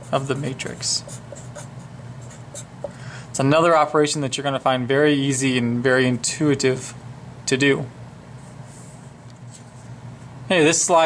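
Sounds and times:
marker writing on paper: 0.0 - 3.0.

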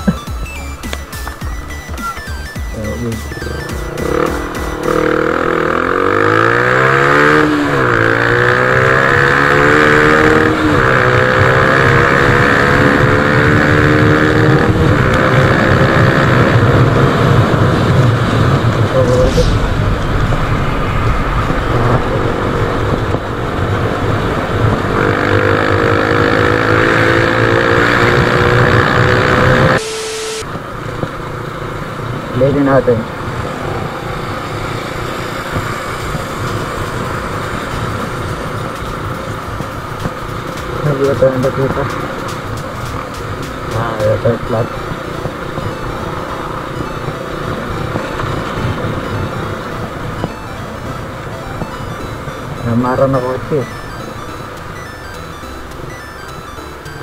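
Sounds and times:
motorcycle engine accelerating: 0.0 - 57.0.

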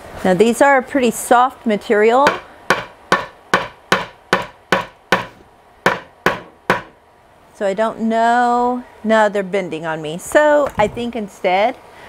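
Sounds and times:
hammer striking nails into wood: 2.2 - 7.0.

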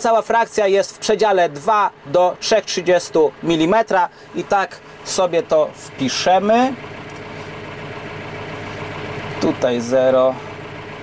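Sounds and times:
tractor engine idling: 0.0 - 11.0.

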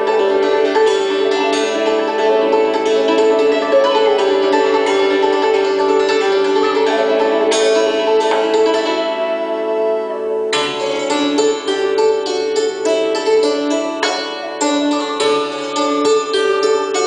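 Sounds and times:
hammer dulcimer folk tune: 0.0 - 17.0.

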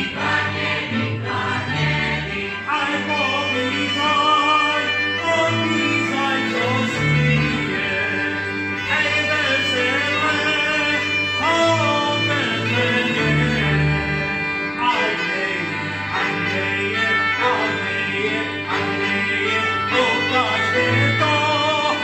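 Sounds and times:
fiddles playing folk music: 0.0 - 22.0
man singing: 1.7 - 22.0.

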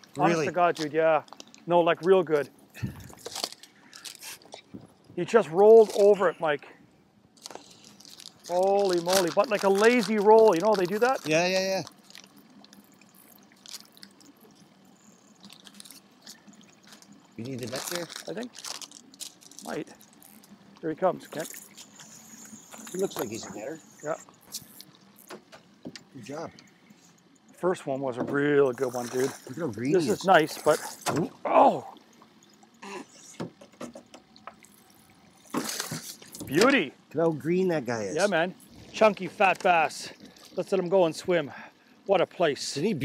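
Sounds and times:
water lapping against boat hull: 0.0 - 6.2, 7.3 - 37.2.

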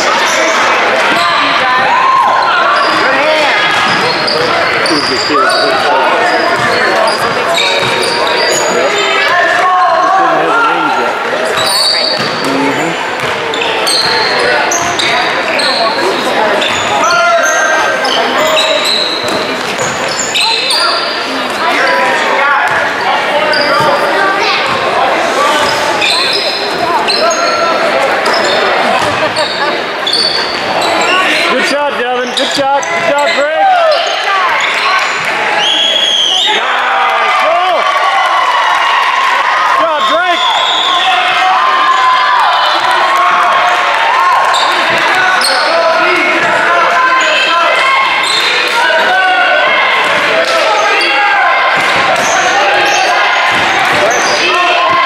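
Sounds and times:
sneakers squeaking: 0.0 - 9.6, 11.1 - 36.6, 43.6 - 49.1, 50.0 - 55.0
murmur of voices and shouts: 0.0 - 55.0
basketball bouncing: 6.6 - 8.2, 12.2 - 12.6, 13.2 - 14.2.

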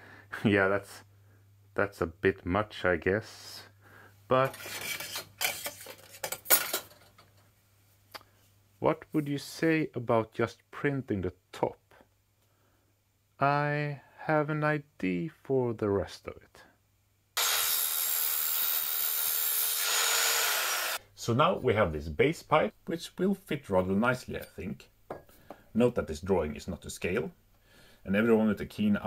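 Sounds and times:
metal pipe scraping and clinking: 4.4 - 6.9
mitre saw cutting metal tube: 17.4 - 21.0.

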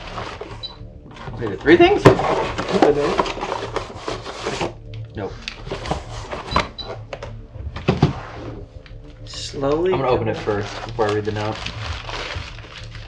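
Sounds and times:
cardboard rustling and scraping: 0.0 - 4.8, 5.6 - 6.7.

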